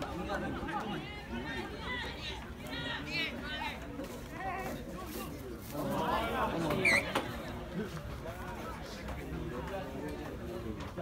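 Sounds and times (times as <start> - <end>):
chatter: 0.0 - 11.0.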